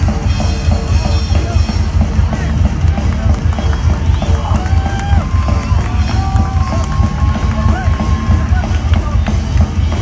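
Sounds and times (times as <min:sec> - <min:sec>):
bass: 0:00.0 - 0:10.0
pounding drums: 0:00.0 - 0:10.0.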